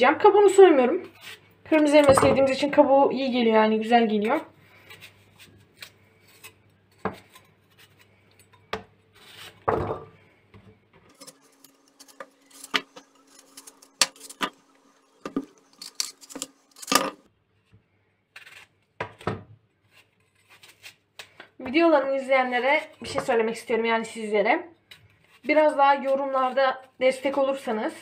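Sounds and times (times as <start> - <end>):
knife slicing an apple: 4.2 - 9.7, 11.1 - 17.3, 18.3 - 21.5.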